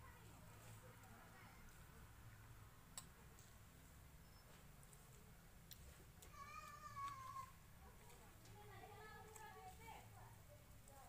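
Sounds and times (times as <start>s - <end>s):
faint high-pitched cry: 6.2s - 7.6s.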